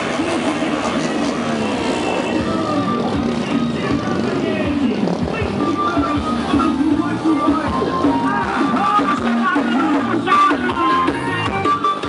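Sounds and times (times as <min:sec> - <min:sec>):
motorcycle and car engines: 0:00.0 - 0:12.0
music with voices from loudspeakers: 0:00.0 - 0:12.0.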